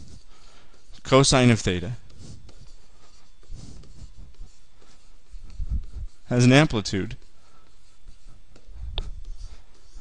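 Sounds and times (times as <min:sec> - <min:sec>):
stylus scratching on tablet: 0:00.0 - 0:10.0.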